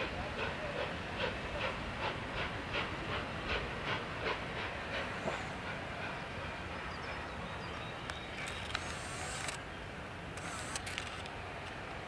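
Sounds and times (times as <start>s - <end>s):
distant steam train running: 0.0s - 12.0s.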